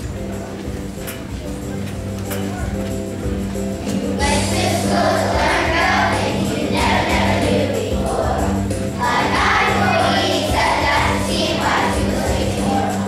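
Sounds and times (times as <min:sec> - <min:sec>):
instrumental accompaniment: 0:00.0 - 0:13.0
children's choir singing: 0:03.8 - 0:13.0.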